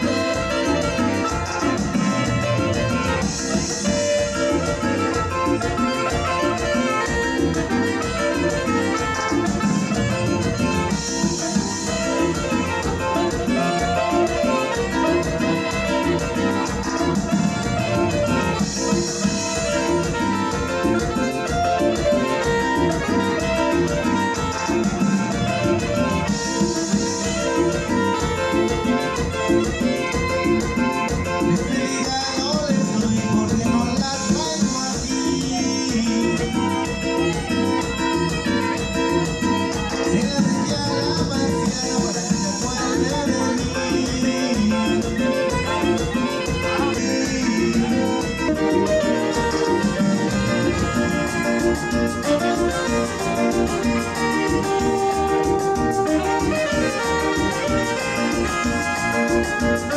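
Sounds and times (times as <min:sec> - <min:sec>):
band music with dance beat: 0:00.0 - 0:59.9.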